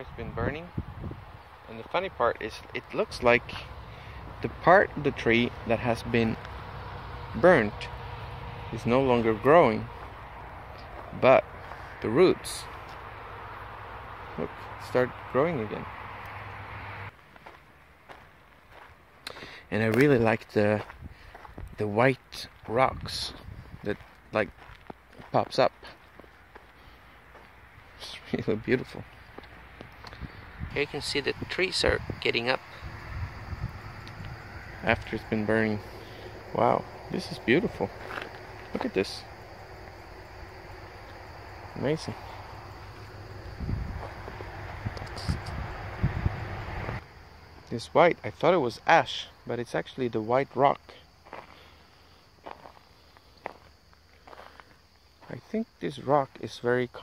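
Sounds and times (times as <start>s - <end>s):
faint outdoor background noise: 0.0s - 57.0s
footsteps on stony ground: 9.2s - 12.0s, 12.6s - 13.0s, 17.1s - 27.6s, 35.8s - 40.0s, 42.1s - 45.1s, 51.0s - 55.3s.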